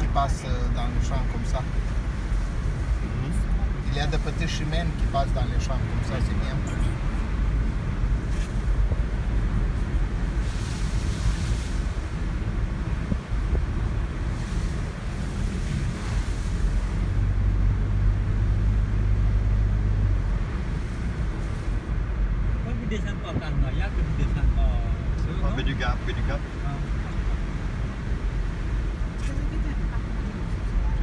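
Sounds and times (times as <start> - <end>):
tyre and engine rumble: 0.0 - 31.0
wind hiss: 7.1 - 22.6.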